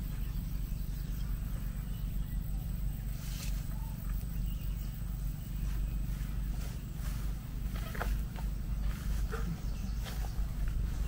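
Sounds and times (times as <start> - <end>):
low fluctuating outdoor rumble: 0.0 - 11.0.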